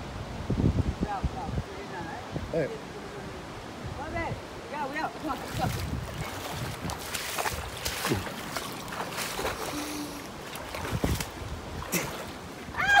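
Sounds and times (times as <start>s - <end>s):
wind on microphone: 0.0s - 13.0s
flowing water: 1.0s - 13.0s
footsteps on stones and gravel: 5.8s - 9.8s.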